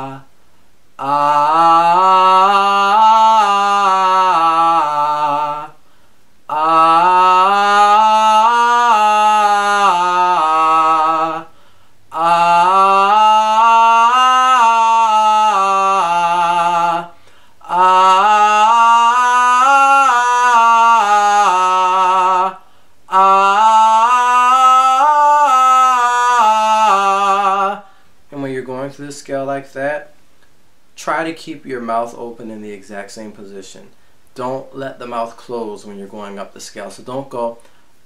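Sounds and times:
man singing a scale: 0.0 - 0.3, 1.0 - 5.8, 6.5 - 30.2, 31.0 - 37.7
breath intake: 17.1 - 17.6.

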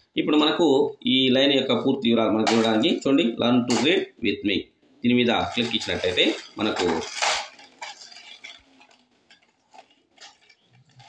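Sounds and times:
faint clinks and scrapes: 5.5 - 11.0.

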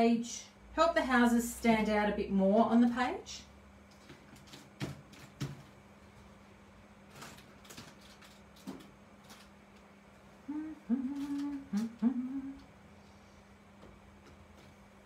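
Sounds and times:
woman humming: 10.4 - 12.7.

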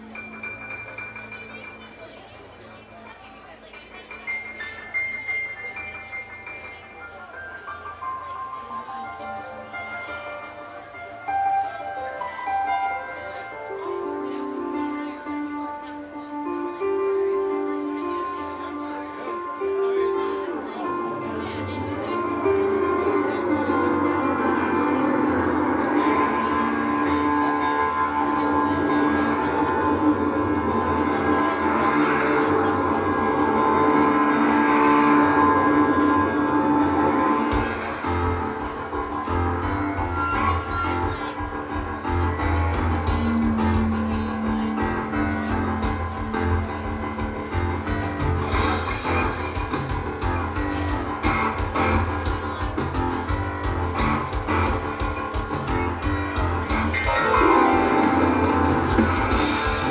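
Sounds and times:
live rock band sustained notes: 0.0 - 59.9.

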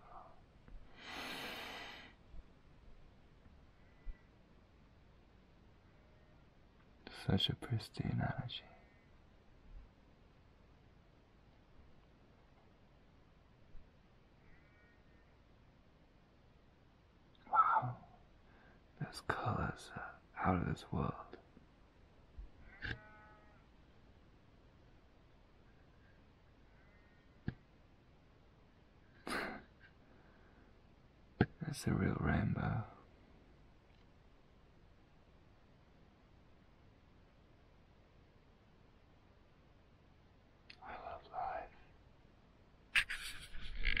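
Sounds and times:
faint animal call: 5.8 - 6.6, 14.3 - 15.6, 17.4 - 18.7, 22.6 - 23.8, 25.8 - 27.4
person whispering: 7.1 - 8.8, 17.5 - 18.1, 19.0 - 21.4, 40.7 - 41.9.

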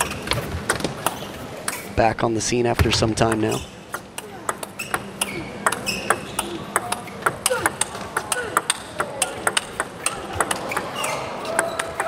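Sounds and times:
table tennis ball clicking: 3.3 - 10.9.

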